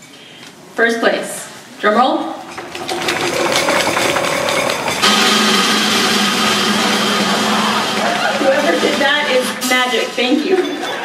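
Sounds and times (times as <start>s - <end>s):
audience applauding: 2.5s - 9.0s
crowd cheering: 2.5s - 9.6s.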